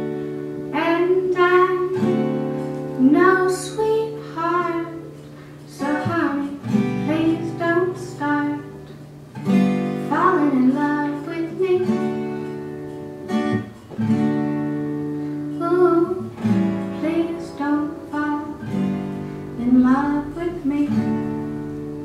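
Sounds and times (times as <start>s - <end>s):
strummed acoustic guitar: 0.0s - 22.0s
woman singing: 0.7s - 8.9s, 10.0s - 12.4s, 15.4s - 21.7s.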